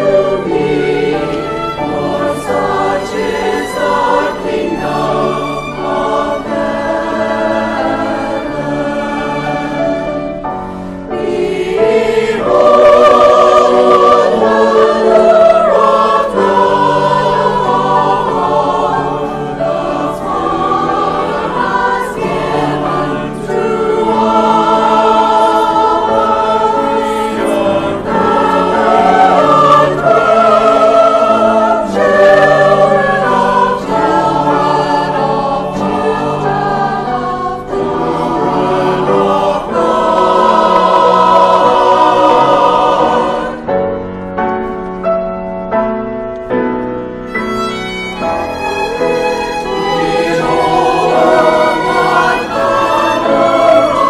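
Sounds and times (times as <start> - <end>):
church choir singing: 0.0 - 54.0.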